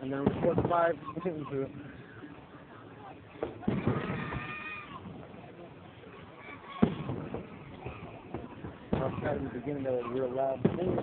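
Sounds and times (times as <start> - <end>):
fireworks bangs: 0.0 - 1.0, 3.4 - 5.5, 6.7 - 11.0.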